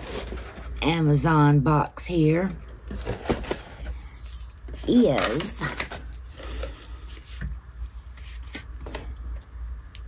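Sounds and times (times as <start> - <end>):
low steady hum: 0.0 - 10.0
packaging crinkling and rustling: 2.7 - 7.4.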